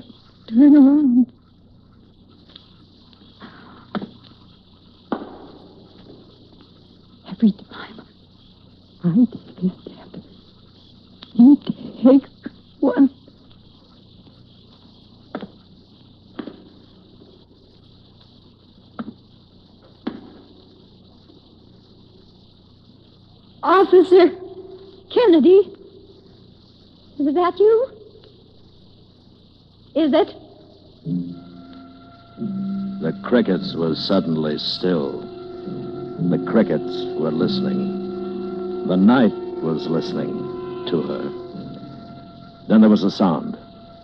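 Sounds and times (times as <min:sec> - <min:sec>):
crickets chirring: 0:00.0 - 0:44.0
faint tape hiss and hum: 0:00.0 - 0:44.0
wavering voice-like hum: 0:31.0 - 0:44.0.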